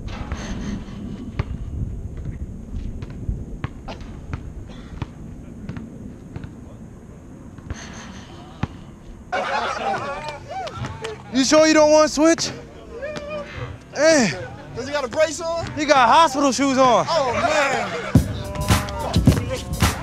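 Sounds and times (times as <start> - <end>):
wind rumble on microphone: 0.0 - 7.7
basketball bouncing on asphalt: 1.4 - 6.6
voices calling out: 7.7 - 20.0.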